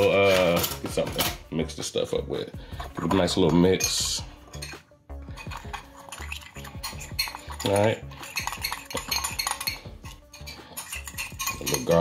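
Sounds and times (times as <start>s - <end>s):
metal spoon scraping glass bowl: 2.7s - 12.0s.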